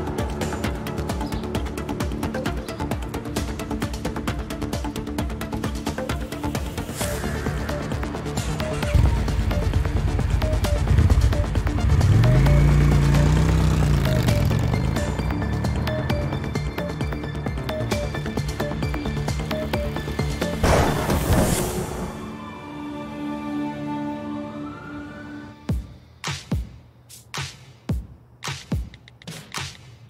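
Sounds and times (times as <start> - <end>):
background music with steady beat: 0.0 - 30.0
motorcycle riding past: 10.9 - 16.2.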